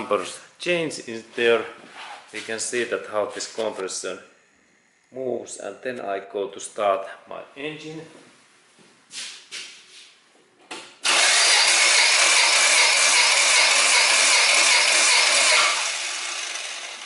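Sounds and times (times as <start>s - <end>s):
engine cranking on starter motor: 11.0s - 17.0s.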